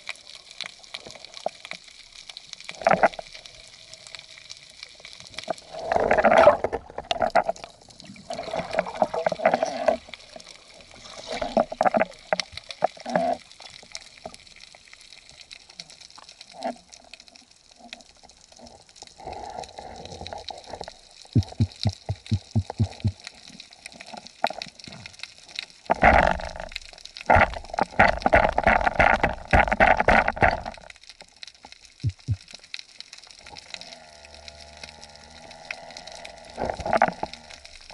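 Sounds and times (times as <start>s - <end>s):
water gurgling and swishing: 0.0s - 37.9s
low thuds: 21.4s - 23.2s, 32.1s - 32.4s.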